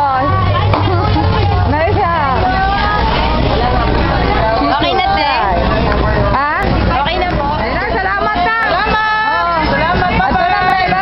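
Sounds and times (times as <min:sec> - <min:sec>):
background crowd chatter: 0:00.0 - 0:11.0
people talking over one another: 0:00.0 - 0:11.0
steady low rumble: 0:00.0 - 0:11.0.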